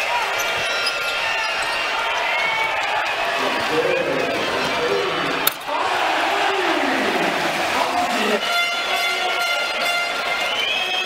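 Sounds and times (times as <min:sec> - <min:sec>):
sneakers squeaking: 0:00.0 - 0:02.4
arena crowd noise: 0:00.0 - 0:11.0.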